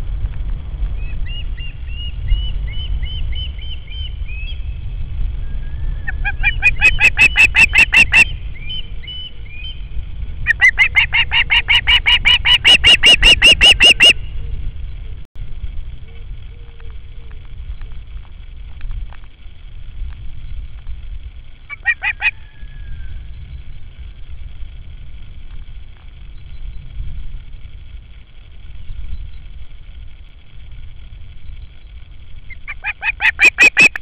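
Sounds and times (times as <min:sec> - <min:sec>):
wind rumble on microphone: 0:00.0 - 0:34.0
osprey calling: 0:05.4 - 0:15.0, 0:20.8 - 0:24.1, 0:31.3 - 0:34.0.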